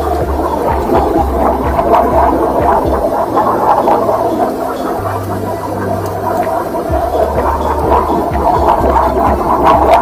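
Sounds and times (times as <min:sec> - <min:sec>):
machine humming: 0:00.0 - 0:10.0.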